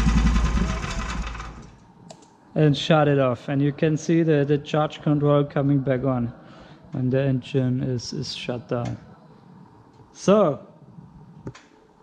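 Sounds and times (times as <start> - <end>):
small petrol engine idling: 0.0 - 1.8.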